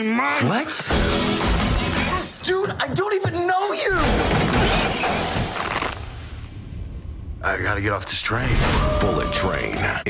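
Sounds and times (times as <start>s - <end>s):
glass shattering: 0.9s - 2.5s.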